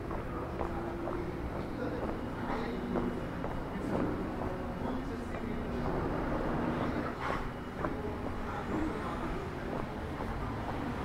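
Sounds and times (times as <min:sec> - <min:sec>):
faint distant voices: 0:00.0 - 0:11.0
road traffic rumble: 0:00.0 - 0:11.0.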